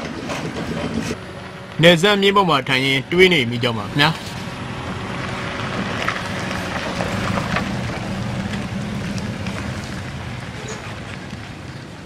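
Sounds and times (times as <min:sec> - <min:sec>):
scooter engines passing: 0:00.0 - 0:12.0
street noise: 0:00.0 - 0:12.0.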